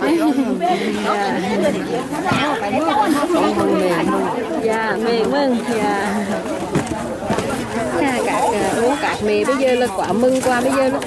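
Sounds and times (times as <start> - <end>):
people talking over one another: 0.0 - 11.0.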